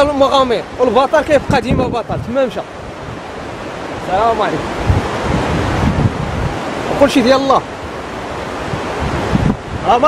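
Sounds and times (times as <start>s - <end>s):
man talking: 0.0s - 2.7s, 4.0s - 4.7s, 6.9s - 7.7s
wind on microphone: 0.0s - 10.0s.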